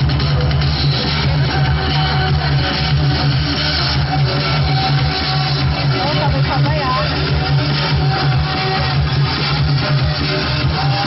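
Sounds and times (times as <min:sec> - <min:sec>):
band music with bass line: 0:00.0 - 0:11.0.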